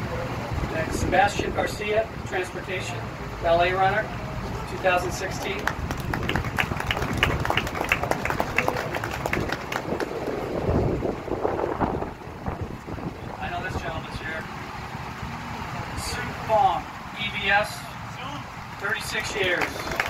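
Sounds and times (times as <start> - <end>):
small crowd clapping: 4.5 - 10.6, 18.8 - 20.0.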